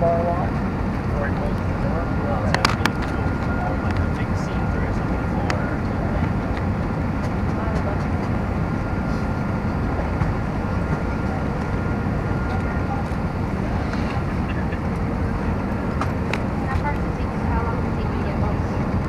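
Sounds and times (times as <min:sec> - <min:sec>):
faint high whine: 0:00.0 - 0:06.4
airliner cabin engine noise: 0:00.0 - 0:19.0.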